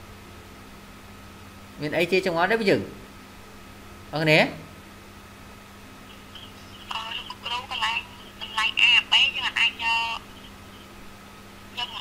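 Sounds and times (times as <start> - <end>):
faint steady hum: 0.0 - 12.0
tinny voice speaking: 6.7 - 10.5, 11.7 - 12.0.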